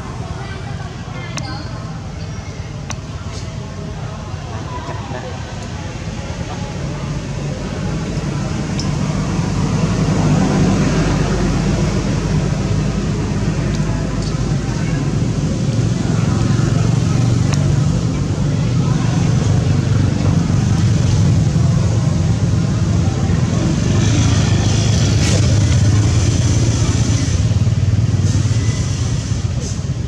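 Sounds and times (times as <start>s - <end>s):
low engine rumble: 0.0s - 30.0s.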